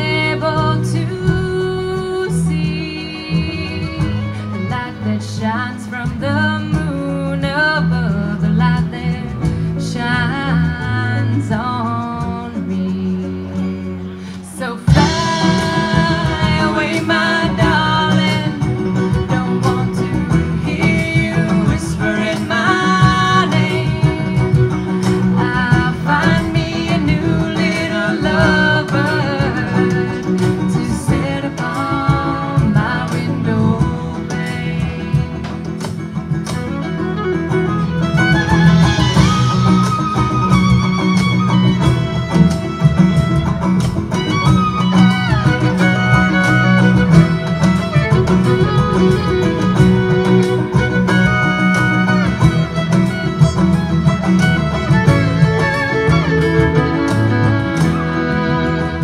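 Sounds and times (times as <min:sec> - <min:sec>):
woman singing: 0:00.0 - 0:35.9
bass line: 0:00.0 - 0:59.0
bowed fiddle: 0:00.0 - 0:59.0
drum kit: 0:00.0 - 0:59.0
picked banjo: 0:00.0 - 0:59.0.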